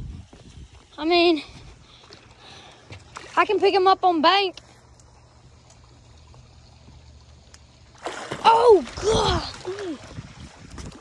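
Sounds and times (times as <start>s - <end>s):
faint water sound: 0.0s - 11.0s
low background hum: 0.0s - 11.0s
faint ticks: 4.5s - 7.8s.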